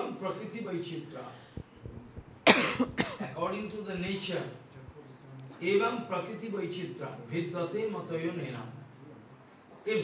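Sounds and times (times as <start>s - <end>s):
person speaking: 1.3s - 6.1s
person coughing: 2.4s - 3.3s.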